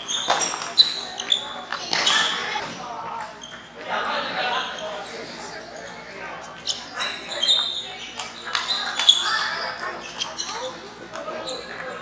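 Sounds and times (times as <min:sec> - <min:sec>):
ping-pong balls bouncing on tables: 0:00.0 - 0:12.0.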